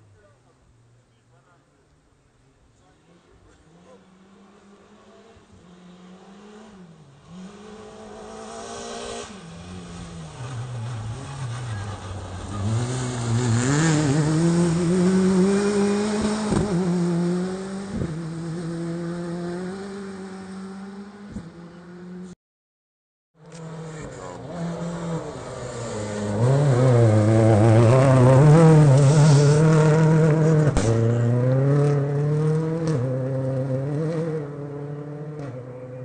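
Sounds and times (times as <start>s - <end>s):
rally car engine revving: 3.1s - 22.4s, 23.4s - 36.0s.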